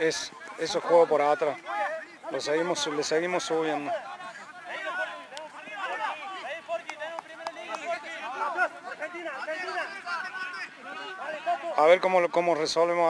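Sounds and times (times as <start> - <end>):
players calling and shouting: 0.0 - 13.0.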